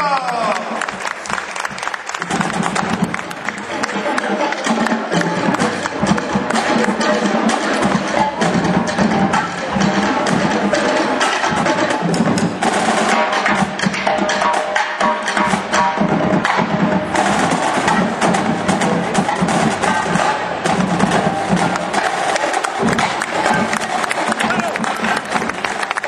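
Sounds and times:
drums beating: 0:00.0 - 0:26.0
marching band playing: 0:00.5 - 0:26.0.

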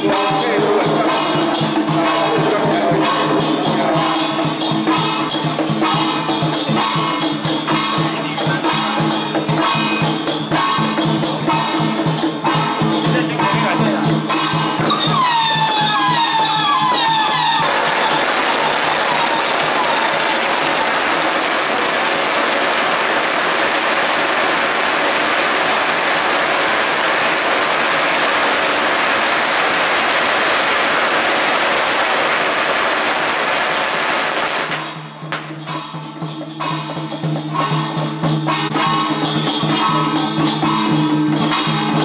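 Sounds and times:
firecrackers crackling: 0:00.0 - 0:42.0.

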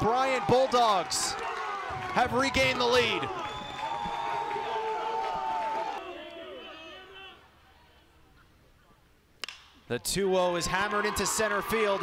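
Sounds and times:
faint ballpark background: 0:00.0 - 0:12.0.

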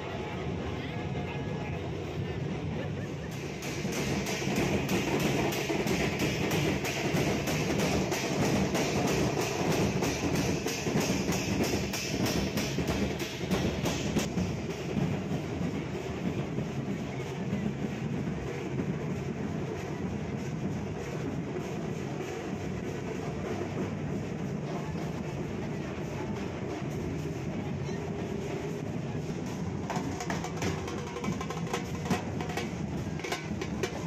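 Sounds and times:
crowd and engine rumble: 0:00.0 - 0:34.0.

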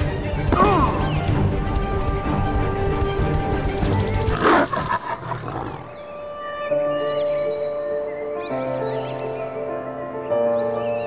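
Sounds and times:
background music: 0:00.0 - 0:11.0
beast roaring: 0:04.3 - 0:06.1.

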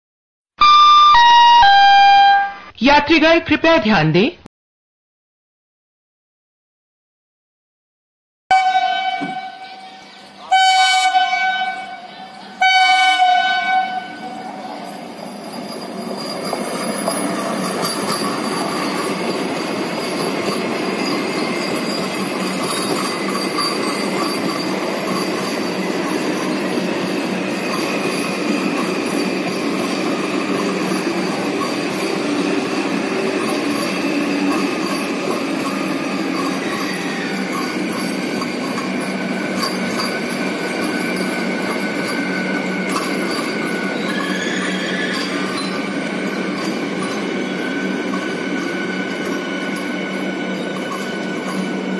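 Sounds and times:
train horn blasts: 0:08.5 - 0:09.8, 0:10.5 - 0:14.4
train coaches rumbling on rails: 0:08.6 - 0:51.9.

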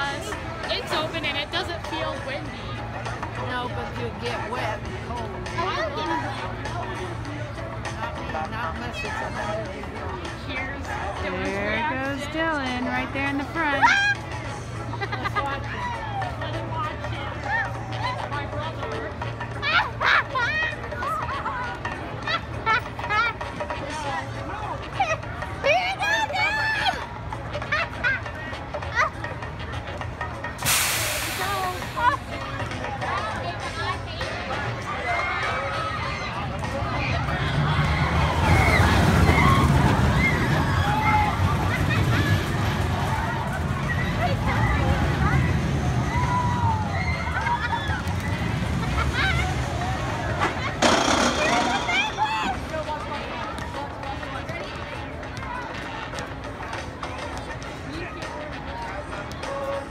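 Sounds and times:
background music: 0:00.0 - 0:30.8
chatter: 0:00.0 - 0:59.9
onlookers' voices: 0:00.0 - 0:59.9
compressed air hiss: 0:30.6 - 0:31.6
excited voices: 0:34.8 - 0:53.2.

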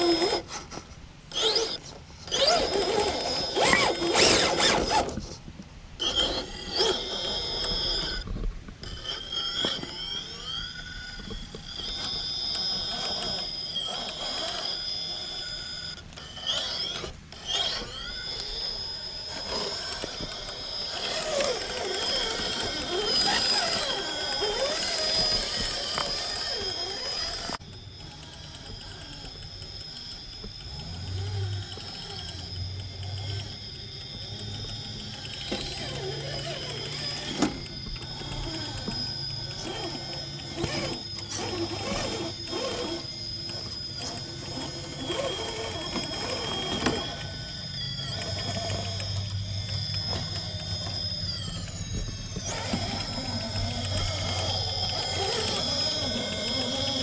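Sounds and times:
electric motor and gears whining: 0:00.0 - 0:57.0.

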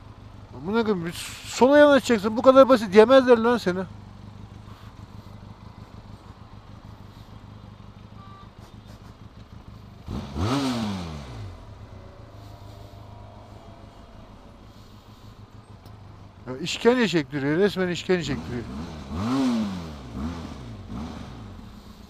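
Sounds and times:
motorcycle engine idling: 0:00.0 - 0:22.0
throttle rev: 0:10.0 - 0:16.1, 0:18.0 - 0:22.0.

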